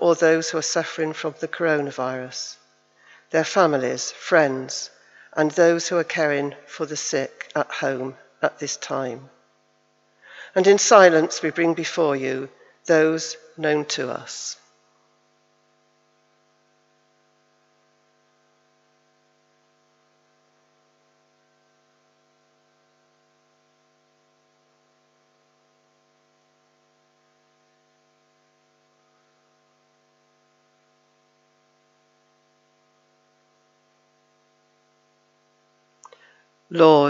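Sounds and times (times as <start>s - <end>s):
electrical mains hum: 0.0s - 37.0s.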